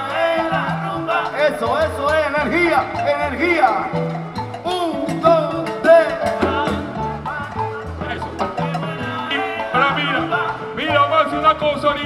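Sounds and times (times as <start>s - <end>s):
person singing: 0.0s - 12.0s
salsa band playing: 0.0s - 12.0s.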